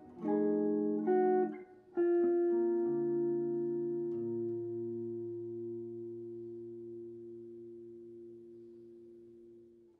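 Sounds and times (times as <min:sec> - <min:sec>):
electric guitar chord ringing: 0:00.0 - 0:09.9.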